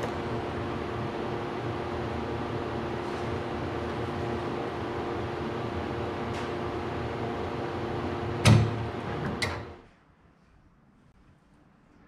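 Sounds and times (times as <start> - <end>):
machine hum: 0.0 - 9.8.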